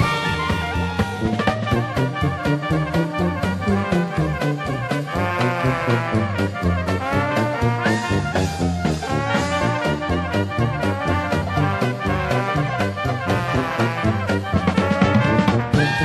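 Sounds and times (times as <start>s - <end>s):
clarinet: 0.0s - 16.0s
drums: 0.0s - 16.0s
trombone: 0.0s - 16.0s
trumpet: 0.0s - 16.0s
tuba: 0.0s - 16.0s.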